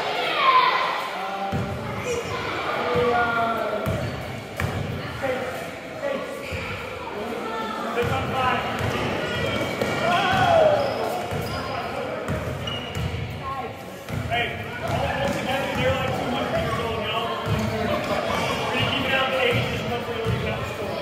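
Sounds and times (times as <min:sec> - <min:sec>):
people shouting: 0:09.9 - 0:11.0.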